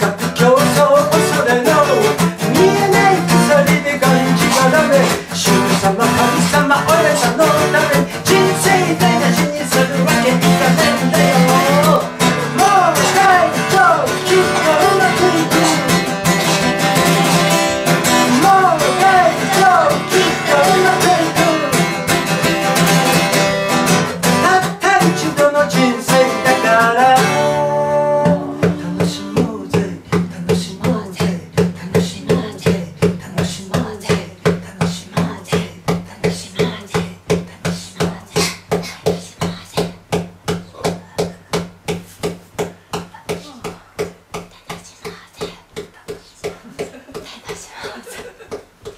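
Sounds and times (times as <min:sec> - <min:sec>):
man singing: 0:00.0 - 0:38.6
acoustic guitar strumming: 0:00.0 - 0:42.9.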